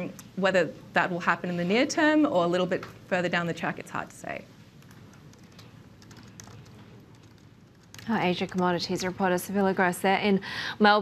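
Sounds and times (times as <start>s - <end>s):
soft irregular clicks: 4.8s - 8.8s.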